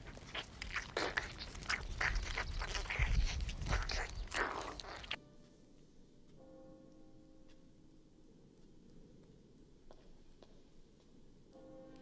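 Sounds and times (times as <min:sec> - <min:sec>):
mouth sucking and slurping: 0:00.0 - 0:05.2.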